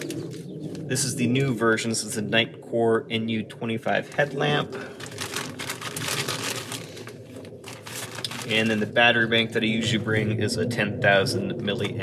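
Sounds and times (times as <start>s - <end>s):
plastic bag crinkling: 0.0s - 0.9s, 4.1s - 9.0s.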